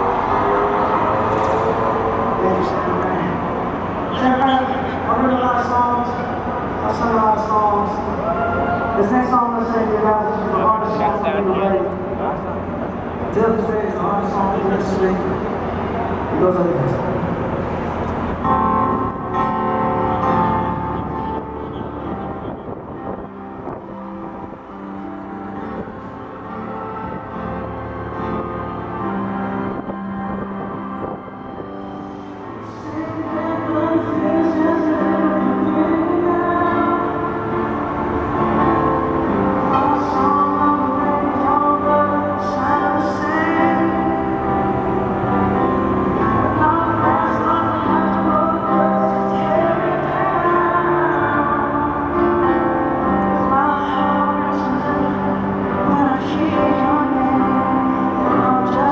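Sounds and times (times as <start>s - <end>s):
piano chords over pa: 0.0s - 58.9s
man talking over sound system: 1.9s - 15.5s, 16.3s - 17.4s.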